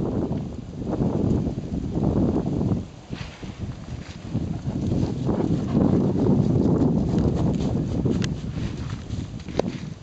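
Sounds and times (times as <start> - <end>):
footsteps through dry leaves and grass: 3.0 - 10.0.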